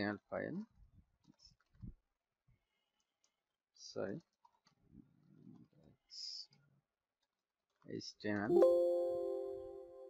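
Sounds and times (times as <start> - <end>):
person speaking: 8.4 - 10.0.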